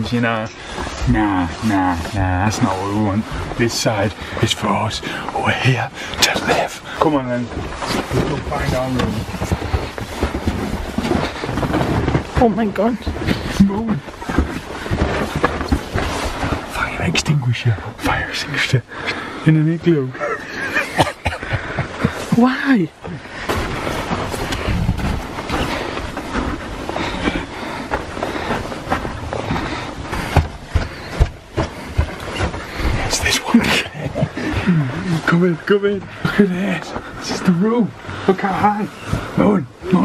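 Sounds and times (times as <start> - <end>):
footsteps crunching on snow: 0.0 - 20.0, 20.6 - 40.0
steady rustling: 0.0 - 40.0.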